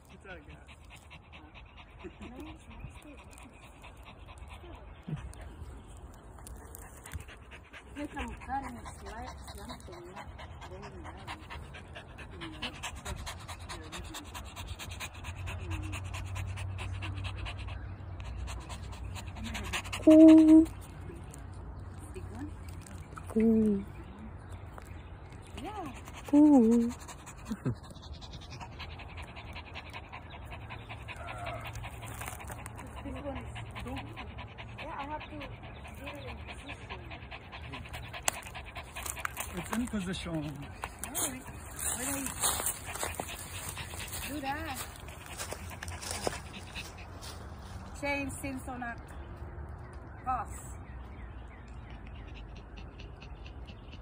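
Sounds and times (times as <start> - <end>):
small dog panting: 0.0 - 49.2, 50.6 - 54.0
faint distant voices: 0.0 - 54.0.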